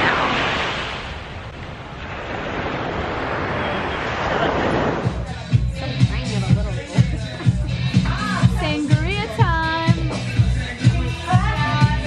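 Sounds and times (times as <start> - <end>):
small waves breaking on beach: 0.0 - 5.2.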